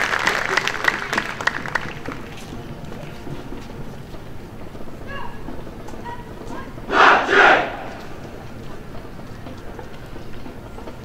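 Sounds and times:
low street background: 0.0s - 11.0s
people shouting in unison: 6.9s - 8.1s.

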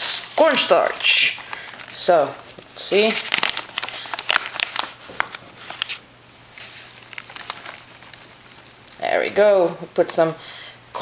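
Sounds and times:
paper bag crinkling: 0.0s - 9.5s
powder shaken into bowl: 6.6s - 9.1s.

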